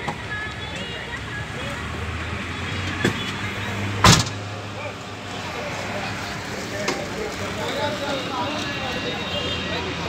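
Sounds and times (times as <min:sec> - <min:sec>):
loud sharp thump: 0:04.0 - 0:04.4.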